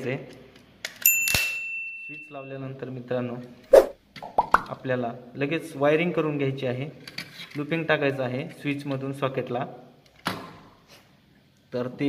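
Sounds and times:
bright bell ding: 0:01.1 - 0:02.6.

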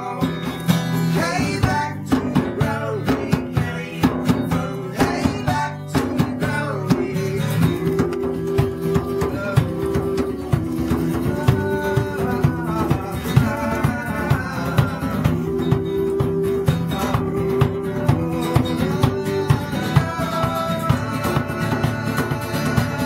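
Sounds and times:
acoustic bass guitar: 0:00.0 - 0:23.0
hand drum beat: 0:00.0 - 0:23.0
strummed acoustic guitar: 0:00.0 - 0:23.0.

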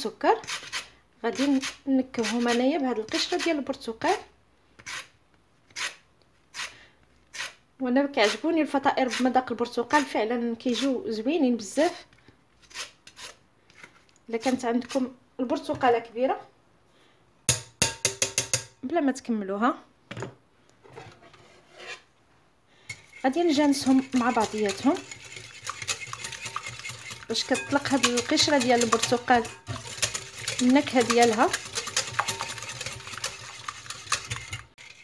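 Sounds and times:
orange peel scraping on grater: 0:23.1 - 0:35.0.

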